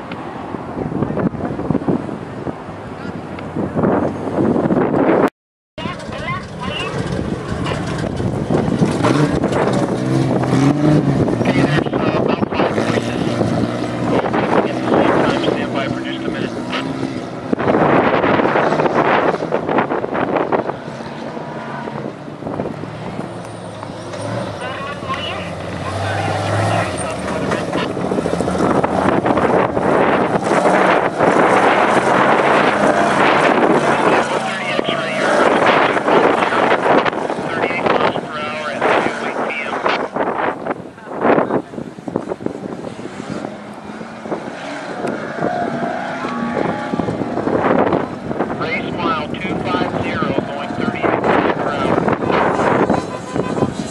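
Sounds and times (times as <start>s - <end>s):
truck engine passing: 0.0s - 53.9s
spectators' voices: 48.6s - 52.4s.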